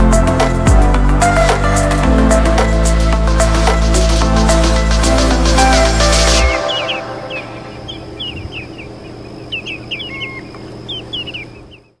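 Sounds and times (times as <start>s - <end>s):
background music: 0.0s - 8.0s
shorebirds calling: 2.7s - 12.0s.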